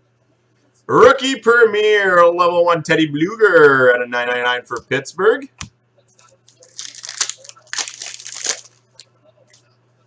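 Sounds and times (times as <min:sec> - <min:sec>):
foil wrapper tearing and crinkling: 0:06.5 - 0:08.8.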